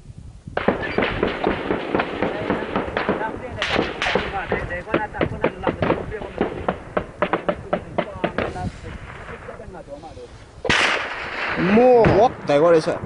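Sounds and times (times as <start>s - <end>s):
heavy gunfire: 0.6s - 9.7s, 10.7s - 12.6s
voices: 2.1s - 13.0s.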